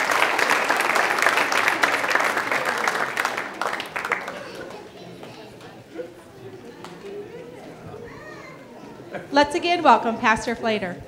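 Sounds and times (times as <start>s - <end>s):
audience chatter: 0.0s - 11.0s
children's voices murmuring: 1.6s - 11.0s
child's voice: 8.0s - 8.7s.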